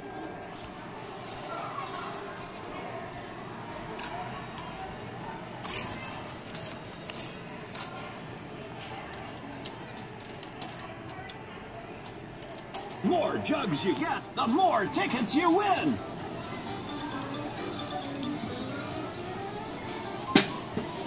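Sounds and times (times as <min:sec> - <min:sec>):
arcade background noise: 0:00.0 - 0:21.0.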